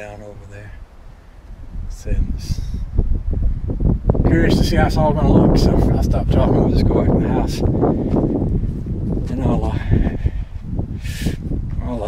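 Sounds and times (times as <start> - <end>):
wind rumble on microphone: 0.0 - 12.0
man's voice: 1.9 - 2.8, 4.2 - 7.8, 9.2 - 10.4, 11.1 - 12.0.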